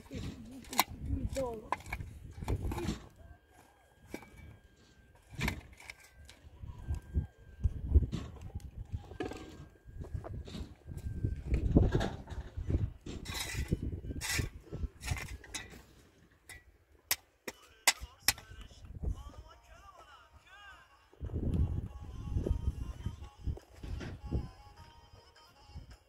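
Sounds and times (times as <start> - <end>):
shovel digging stony soil: 0.0 - 3.2, 5.2 - 6.4, 12.4 - 18.6.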